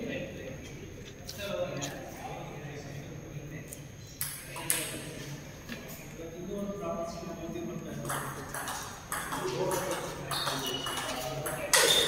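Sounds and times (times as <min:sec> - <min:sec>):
murmur of voices: 0:00.0 - 0:12.0
table tennis ball strikes: 0:04.2 - 0:05.0, 0:08.0 - 0:12.0.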